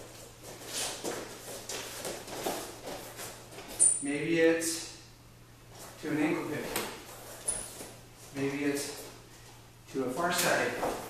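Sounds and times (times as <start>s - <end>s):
shoes shuffling on a mat: 0.0s - 3.9s
shoe squeak: 3.7s - 4.2s, 7.2s - 8.0s.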